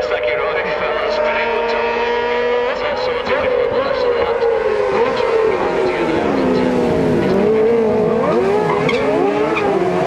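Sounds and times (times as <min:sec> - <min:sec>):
distant racing motorcycle engines: 0:00.0 - 0:10.0.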